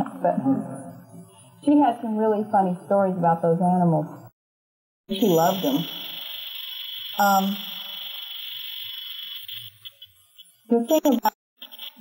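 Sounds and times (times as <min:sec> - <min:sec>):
high-pitched whine: 0:05.1 - 0:12.0.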